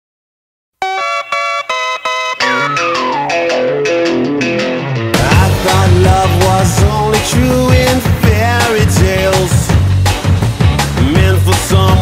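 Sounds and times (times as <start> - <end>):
repeated bright chord strokes: 0.8 - 4.9.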